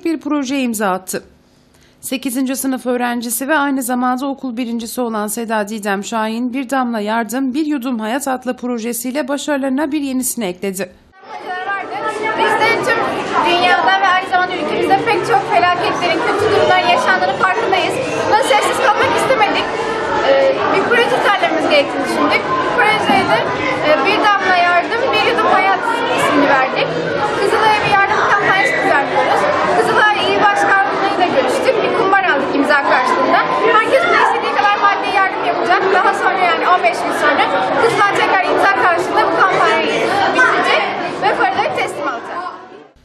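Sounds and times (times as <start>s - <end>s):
girl speaking: 2.1s - 42.8s
children chattering: 11.2s - 43.0s.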